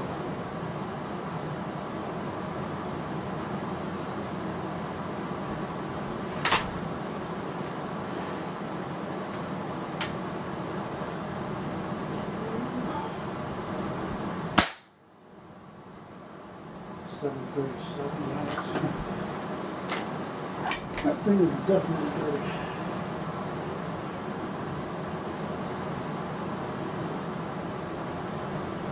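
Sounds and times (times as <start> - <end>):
steady background hum: 0.0 - 28.9
air rifle shot: 14.6 - 15.0.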